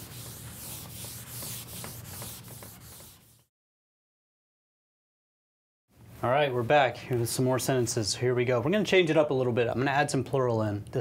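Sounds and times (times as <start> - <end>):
eraser rubbing on chalkboard: 0.0 - 3.5.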